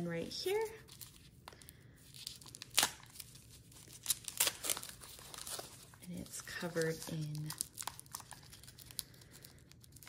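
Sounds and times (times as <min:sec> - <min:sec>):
tissue paper crinkling: 0:00.4 - 0:10.0.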